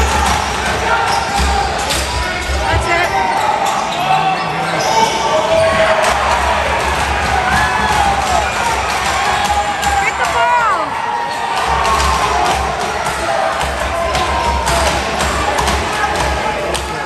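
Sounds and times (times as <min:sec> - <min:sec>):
people calling out: 0:09.2 - 0:11.0.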